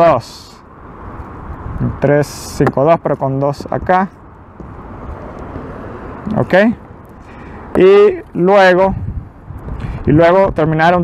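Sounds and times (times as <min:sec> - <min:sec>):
outdoor background rumble: 0:00.0 - 0:11.0.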